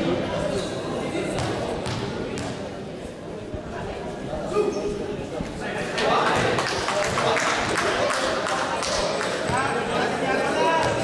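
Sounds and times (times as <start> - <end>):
basketball bouncing on court floor: 1.4 - 2.6.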